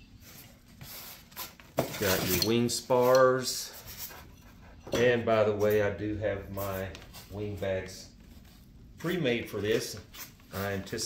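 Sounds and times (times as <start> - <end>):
styrofoam handling noises: 0.2 - 4.0.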